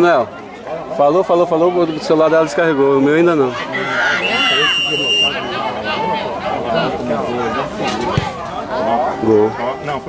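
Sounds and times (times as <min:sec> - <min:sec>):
spectators talking: 0:00.0 - 0:10.0.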